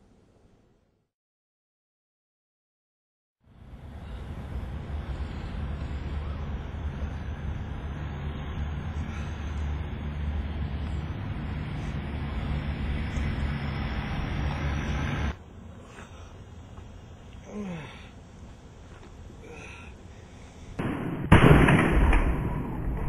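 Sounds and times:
vehicle engine rumble: 3.4 - 20.9.

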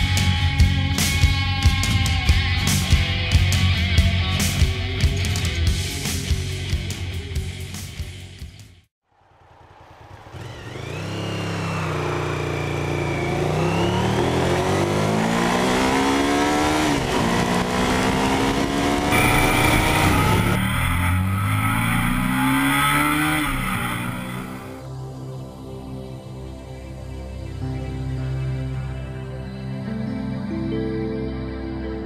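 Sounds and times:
motorcycle engine accelerating: 9.3 - 24.8.

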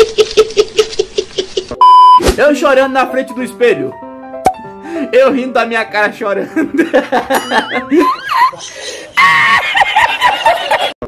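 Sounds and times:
person laughing: 0.0 - 1.8, 6.6 - 11.0.

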